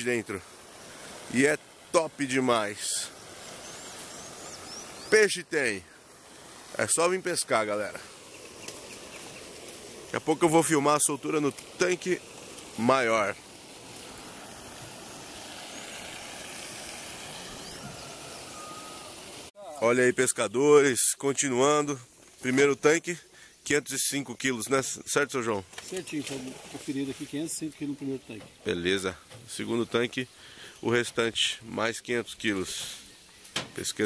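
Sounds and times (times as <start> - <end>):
background hiss: 0.0 - 34.0
outdoor background noise: 0.0 - 34.0
faint bird chirps: 2.8 - 5.4, 8.2 - 9.6, 17.4 - 20.4
faint short whistle: 17.6 - 19.1.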